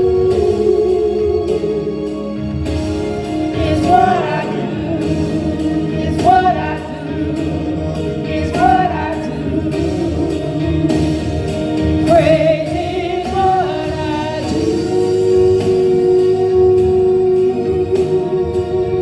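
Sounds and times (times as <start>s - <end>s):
gospel choir singing: 0.0s - 19.0s.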